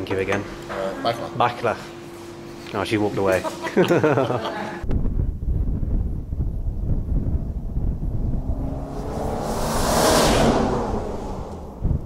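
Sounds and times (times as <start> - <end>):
low rumble: 4.8 - 12.0
vehicle driving past: 6.9 - 12.0.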